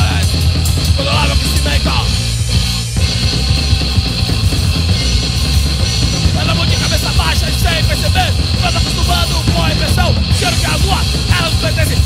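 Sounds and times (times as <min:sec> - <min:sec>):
distorted electric bass: 0:00.0 - 0:12.0
drum kit played fast: 0:00.0 - 0:12.0.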